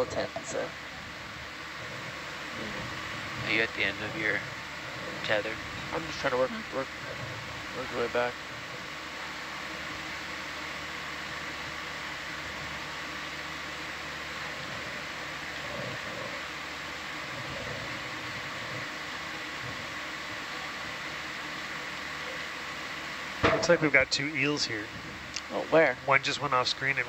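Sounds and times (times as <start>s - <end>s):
faint constant tones: 0.0s - 27.0s
machine hum and hiss: 0.0s - 27.0s.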